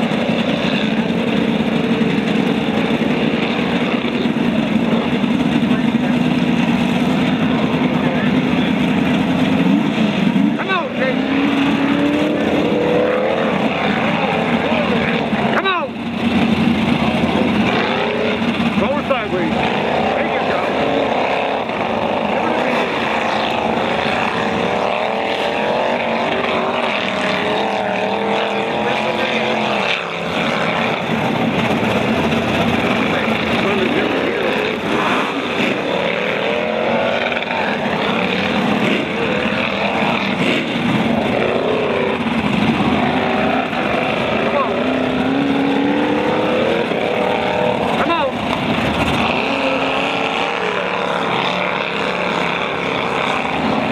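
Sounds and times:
pickup engine revving hard: 0.0s - 53.9s.

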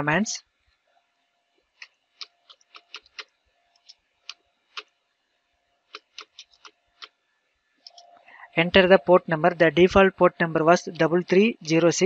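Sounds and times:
keyboard keys clicking: 1.8s - 4.9s, 5.9s - 7.2s.

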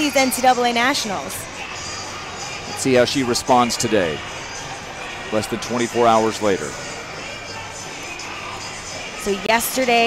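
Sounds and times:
crowd murmur: 0.0s - 10.0s
music playing in a hall: 0.0s - 10.0s.

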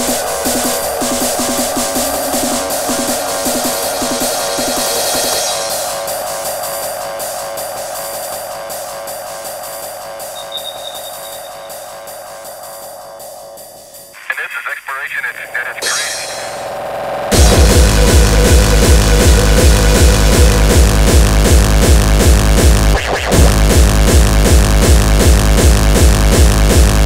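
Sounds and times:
spoken vocal sample: 14.2s - 16.5s
fast kick drum: 17.3s - 27.0s.

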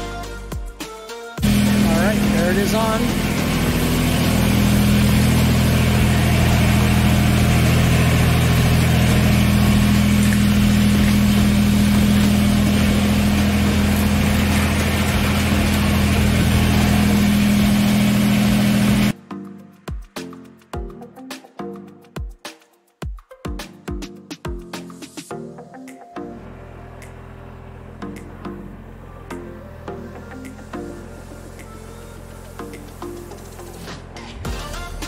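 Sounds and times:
tractor diesel engine running: 1.4s - 19.2s, 26.4s - 35.0s.

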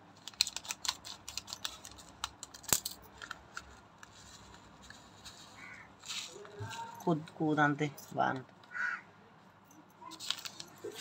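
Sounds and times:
plastic packet rustling: 10.1s - 11.0s.

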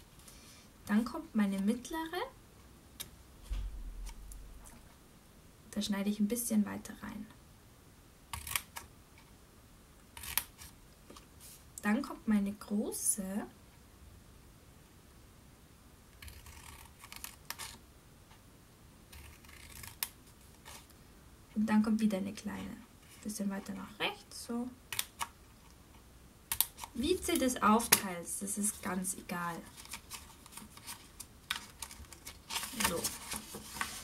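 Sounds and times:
scissors snipping paper: 19.1s - 20.8s
paper clicks and rustles: 29.7s - 34.0s.

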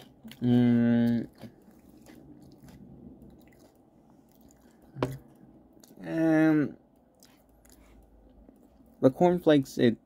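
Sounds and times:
chewing cereal: 0.0s - 6.0s, 7.0s - 9.0s.

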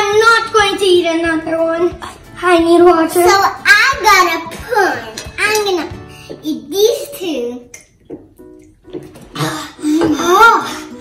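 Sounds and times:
children making vocal sounds: 0.0s - 7.9s, 9.4s - 11.0s
background music: 0.0s - 11.0s.

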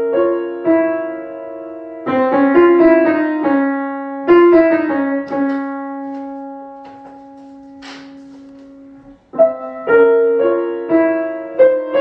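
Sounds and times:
grand piano note: 5.1s - 10.0s.

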